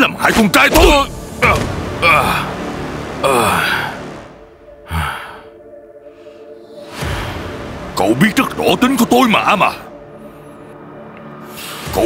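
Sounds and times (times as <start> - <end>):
man groaning: 1.4 - 2.6, 3.2 - 4.0.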